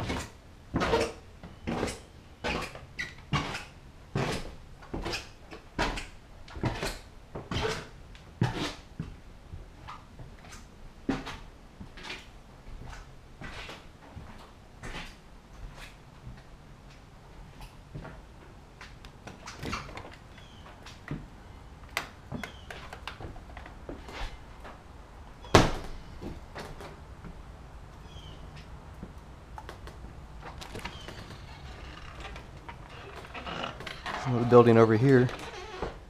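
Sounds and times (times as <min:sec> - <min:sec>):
screen door banging shut: 0:25.4 - 0:26.9
footsteps on wooden floors: 0:28.9 - 0:36.0.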